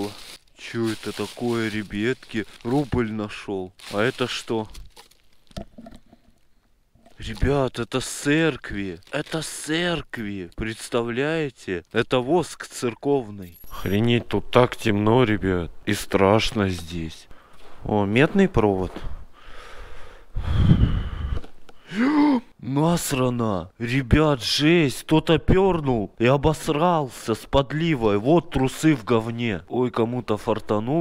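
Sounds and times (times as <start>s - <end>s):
rustling of trash bags: 0.0s - 5.6s, 7.2s - 10.8s
man inhaling: 19.3s - 21.9s
man exhaling through the nose: 19.4s - 22.4s.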